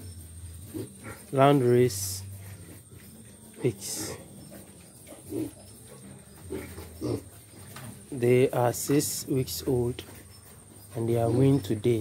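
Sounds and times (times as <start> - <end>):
piglets grunting: 0.0 - 10.2, 10.9 - 12.0.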